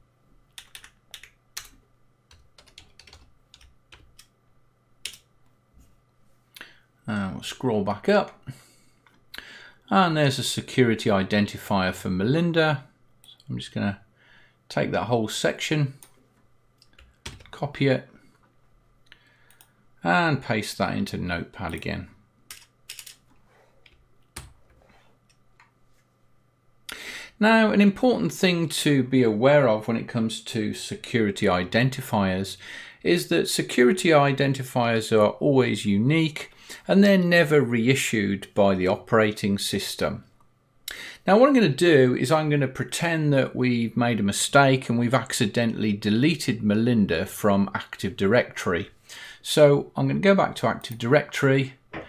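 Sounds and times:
computer keyboard keystrokes: 0.5s - 4.3s, 5.0s - 5.3s, 16.8s - 17.5s.

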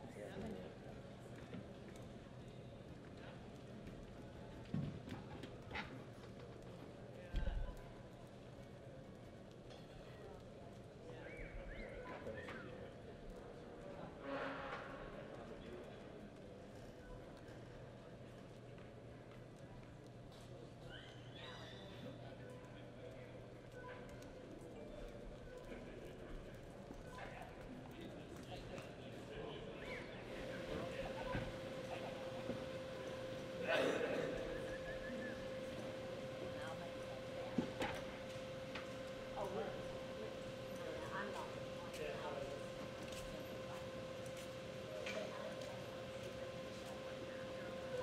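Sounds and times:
faint distant voices: 20.4s - 48.0s
steady low hum: 30.1s - 48.0s.

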